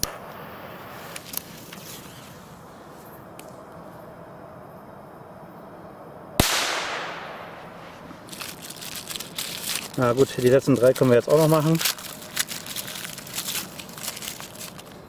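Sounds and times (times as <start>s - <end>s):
firecracker bang with echo: 6.4s - 8.2s.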